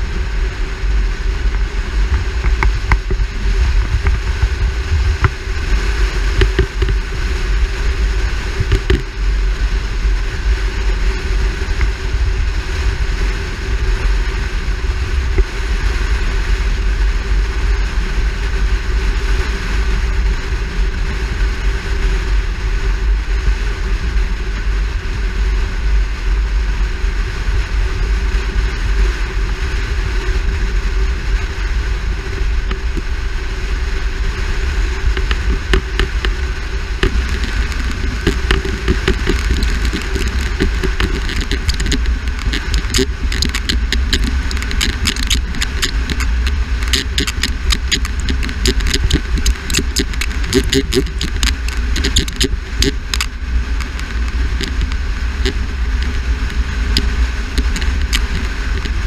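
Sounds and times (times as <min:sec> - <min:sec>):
road noise: 0:00.0 - 0:59.0
wind rush: 0:00.0 - 0:59.0
sharp ticks and clicks: 0:01.4 - 0:09.2, 0:32.3 - 0:33.2, 0:34.7 - 0:59.0.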